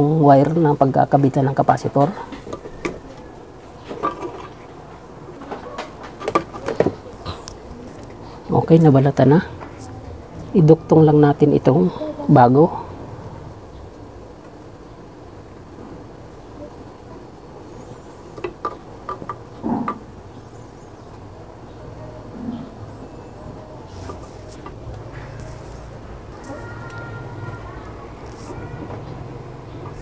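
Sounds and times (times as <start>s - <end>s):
steady low hum: 0.0s - 30.0s.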